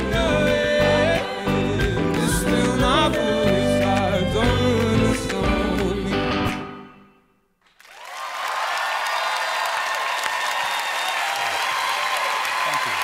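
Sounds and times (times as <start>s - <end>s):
studio audience applause: 7.6s - 13.0s.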